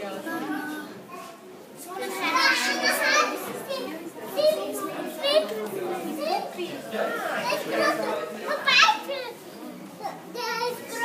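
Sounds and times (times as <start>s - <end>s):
children talking and calling out: 0.0s - 11.0s.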